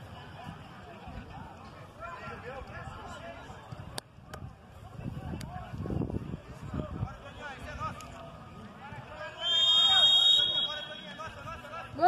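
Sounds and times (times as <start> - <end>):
referee's whistle blast: 9.4 - 11.3.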